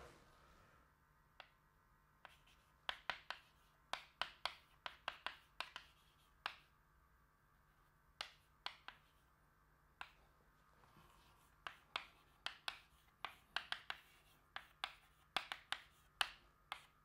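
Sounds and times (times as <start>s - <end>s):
chalk tapping on blackboard: 2.2s - 6.7s, 8.1s - 9.2s, 10.0s - 10.2s, 11.0s - 17.0s.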